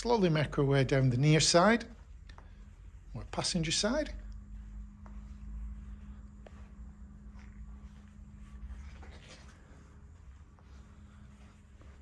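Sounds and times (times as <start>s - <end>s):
soft footsteps on carpet: 0.0s - 12.0s
steady low hum: 0.0s - 12.0s.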